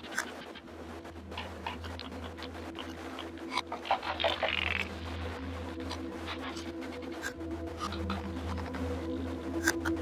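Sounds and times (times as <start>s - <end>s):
low hum drone: 0.0s - 10.0s
sustained mid-pitched tones: 0.0s - 10.0s.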